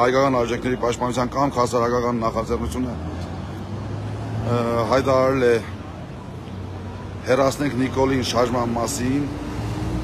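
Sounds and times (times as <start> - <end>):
man talking: 0.0 - 3.1, 4.4 - 5.8, 7.2 - 9.4
road traffic rumble: 0.0 - 10.0.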